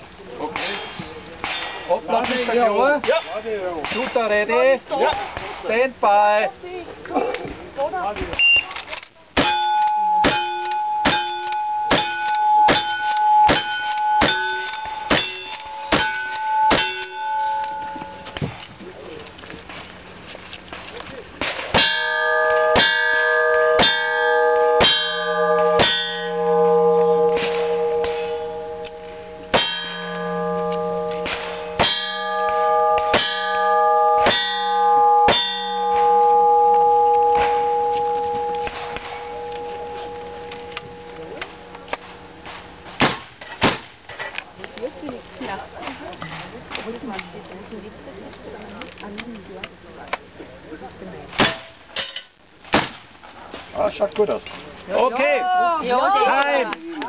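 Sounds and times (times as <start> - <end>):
steel target clanging and ringing: 9.4 - 18.6, 21.4 - 43.2.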